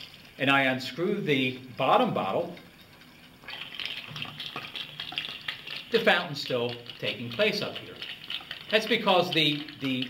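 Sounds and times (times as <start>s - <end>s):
water bubbling through straws: 1.6s - 10.0s.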